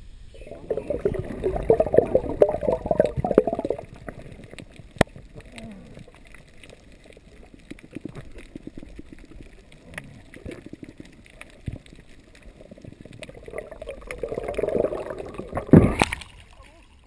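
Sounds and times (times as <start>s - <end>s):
muffled underwater noise: 0.3s - 13.8s
faint clicks and crackles: 0.3s - 17.0s.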